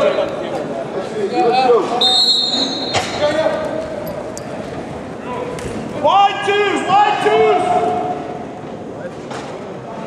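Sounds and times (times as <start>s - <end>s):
echoing hall noise: 0.0s - 10.0s
players shouting: 5.4s - 8.4s.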